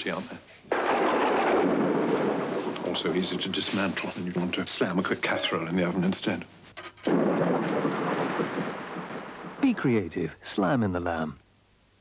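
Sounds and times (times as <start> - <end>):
rumbling boom: 0.7 - 3.6, 7.1 - 9.8.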